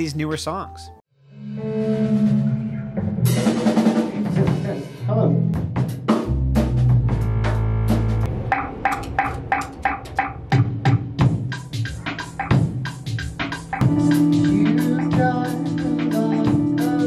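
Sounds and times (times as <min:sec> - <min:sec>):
keyboard chords: 0:00.0 - 0:03.8, 0:13.6 - 0:17.0
drum kit: 0:03.0 - 0:17.0.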